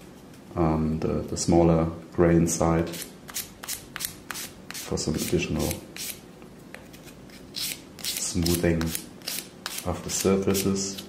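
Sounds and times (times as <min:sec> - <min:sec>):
sanding stick scratching resin: 0:02.9 - 0:06.2, 0:07.3 - 0:11.0.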